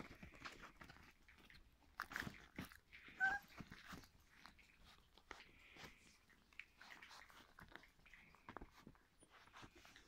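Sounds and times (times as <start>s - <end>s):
puppies rustling: 0.0s - 10.0s
puppy chewing clicks: 0.0s - 10.0s
puppy squeaking: 3.0s - 4.1s.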